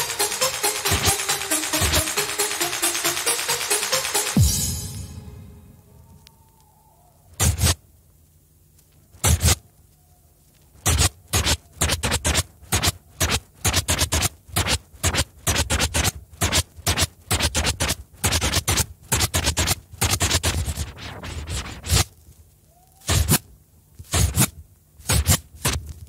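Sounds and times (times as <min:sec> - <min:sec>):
short sharp scratching noises: 0:07.4 - 0:07.8, 0:09.2 - 0:09.6, 0:10.7 - 0:22.3, 0:23.0 - 0:26.0.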